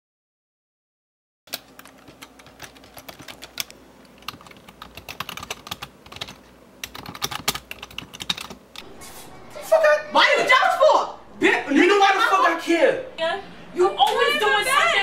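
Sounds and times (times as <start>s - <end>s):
computer keyboard typing: 1.5s - 8.8s.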